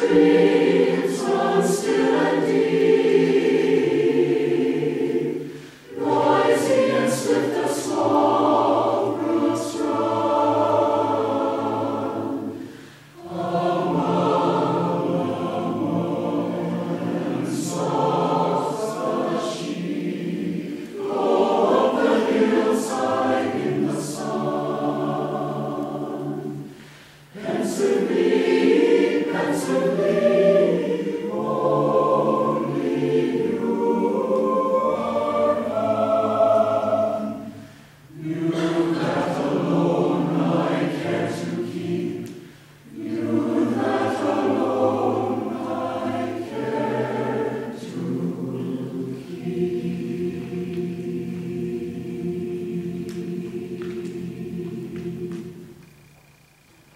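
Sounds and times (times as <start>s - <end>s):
mixed choir singing: 0.0s - 56.9s.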